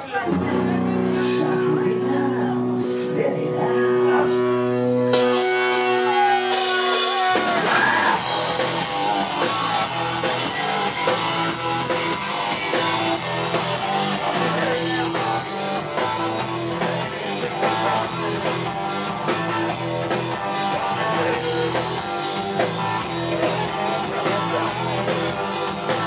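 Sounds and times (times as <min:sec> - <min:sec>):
punk rock band playing loudly: 0:00.0 - 0:26.0.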